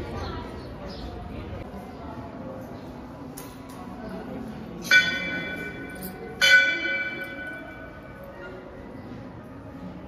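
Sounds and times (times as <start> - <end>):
metal bell ringing: 4.9 - 8.3.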